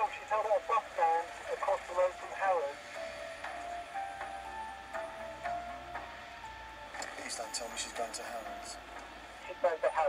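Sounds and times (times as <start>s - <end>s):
background music held notes: 0.0s - 10.0s.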